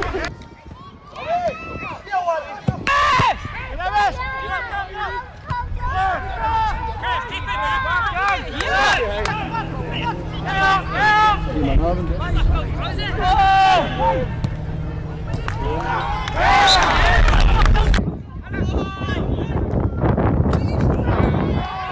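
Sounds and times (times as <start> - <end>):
people calling and shouting: 0.0 - 21.9
steady low hum: 3.4 - 18.5.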